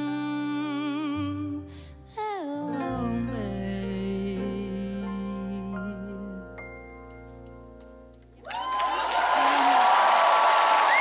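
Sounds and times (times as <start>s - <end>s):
audience clapping and cheering: 8.4s - 11.0s.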